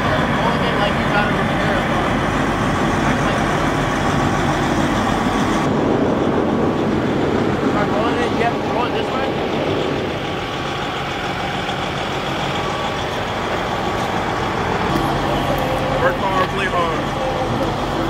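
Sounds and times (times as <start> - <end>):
diesel engine idling: 0.0 - 18.0.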